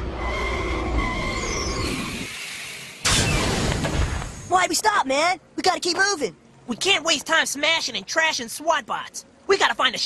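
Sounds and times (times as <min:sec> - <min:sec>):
cartoon vehicle speeding: 0:00.0 - 0:02.4
sliding whistle tones: 0:00.0 - 0:02.4.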